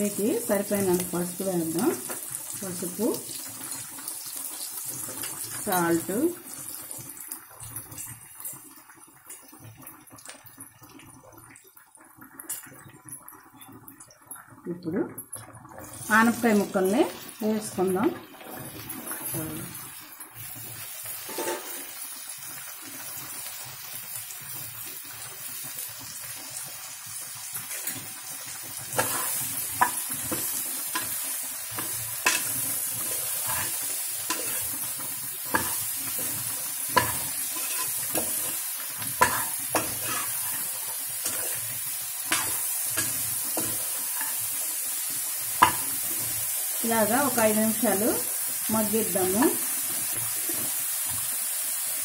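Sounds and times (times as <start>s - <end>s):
vegetables sizzling in a pot: 0.0s - 52.0s
metal ladle scraping a pot: 21.3s - 21.8s, 31.8s - 34.8s, 37.0s - 41.7s.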